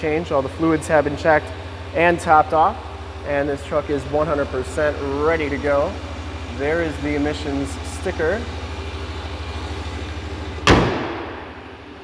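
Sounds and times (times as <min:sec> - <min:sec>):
car engine idling: 0:00.0 - 0:12.0
car hood slamming: 0:10.6 - 0:11.8.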